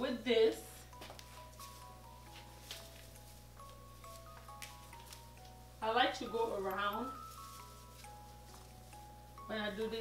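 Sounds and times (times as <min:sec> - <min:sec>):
soft background music: 0:00.0 - 0:10.0
tinsel garland crinkling: 0:00.6 - 0:10.0.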